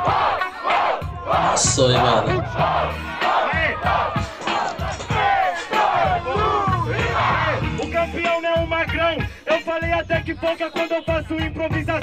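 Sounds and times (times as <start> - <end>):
crowd shouting and cheering: 0.0 - 9.8
hip hop beat: 0.0 - 12.0.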